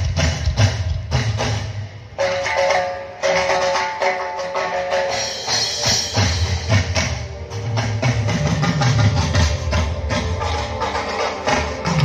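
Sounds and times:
drum kit beat: 0:00.0 - 0:12.0
live band through pa: 0:00.0 - 0:12.0.

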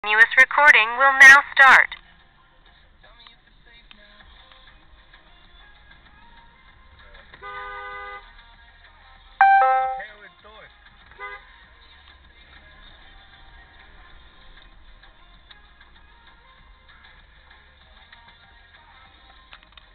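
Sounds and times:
car horn honking: 0:07.4 - 0:08.2, 0:09.4 - 0:10.1.

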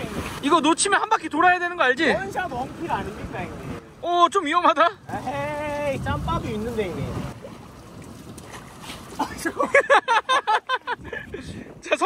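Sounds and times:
water around a boat: 0:00.0 - 0:12.0
wind: 0:00.0 - 0:12.0
laughter: 0:09.2 - 0:11.5.

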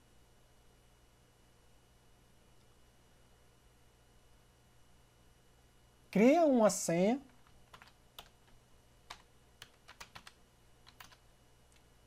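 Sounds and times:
light keystrokes on keyboard: 0:07.3 - 0:11.9.

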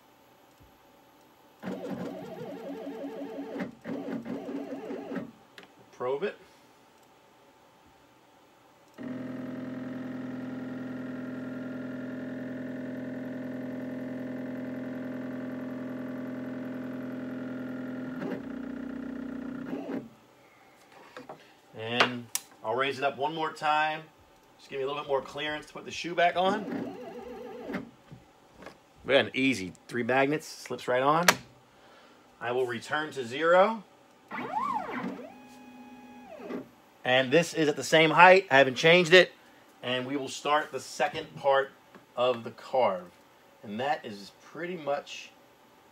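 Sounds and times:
stepper motor whine: 0:09.0 - 0:20.0, 0:34.3 - 0:36.7
stepper motors whining: 0:34.3 - 0:36.7.

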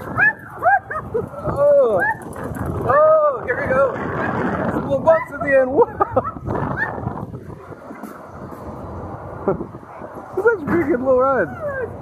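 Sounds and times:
rush of wind: 0:00.0 - 0:12.0
woman laughing and whooping: 0:00.1 - 0:02.2, 0:05.2 - 0:07.0.

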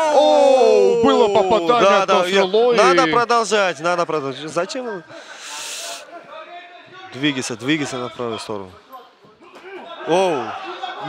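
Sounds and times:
short breathy hiss: 0:05.2 - 0:06.1.

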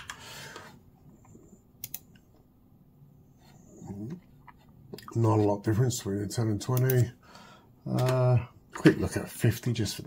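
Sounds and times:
keyboard and mouse clicks: 0:00.0 - 0:02.3, 0:07.9 - 0:08.3.

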